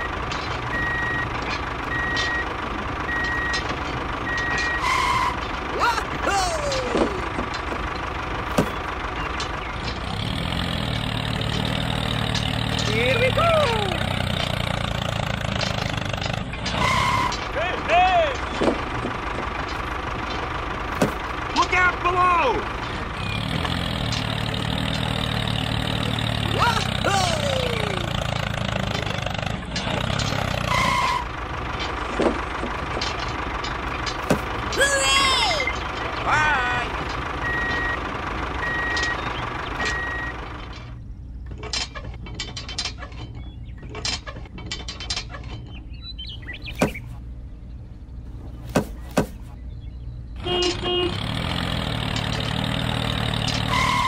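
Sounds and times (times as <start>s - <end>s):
reversing beeps: 0.7s - 1.3s, 1.9s - 2.5s, 3.1s - 3.6s, 4.2s - 5.3s, 37.4s - 38.0s, 38.6s - 39.2s, 39.8s - 40.4s
brief tones: 37.4s - 38.0s, 53.7s - 54.0s.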